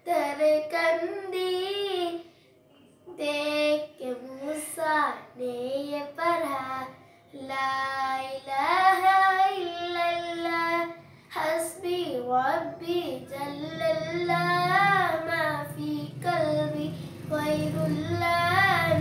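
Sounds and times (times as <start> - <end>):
girl singing unaccompanied: 0.0 - 2.3, 3.1 - 19.0.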